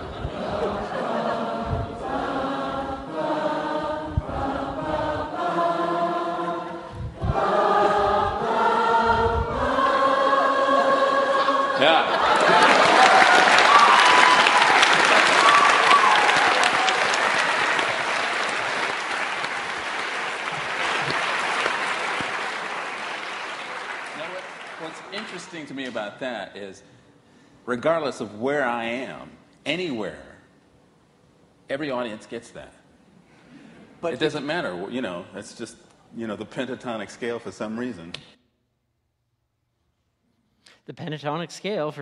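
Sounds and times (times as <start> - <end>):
audience singing notes: 0.0 - 24.9
low thumps: 1.5 - 3.3, 6.9 - 10.1
applause and cheering: 12.1 - 25.7.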